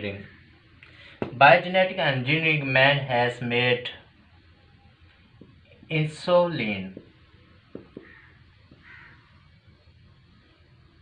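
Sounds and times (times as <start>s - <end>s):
distant crow cawing: 7.8s - 9.5s.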